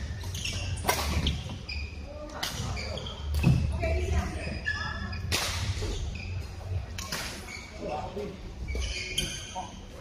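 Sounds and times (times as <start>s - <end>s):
shoes squeaking on court: 0.0s - 10.0s
racket hitting shuttlecock: 0.8s - 1.4s.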